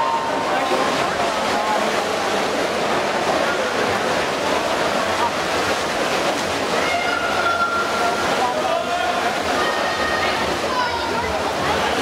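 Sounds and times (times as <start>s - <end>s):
swimmers splashing: 0.0s - 12.0s
voices around pool: 0.0s - 12.0s.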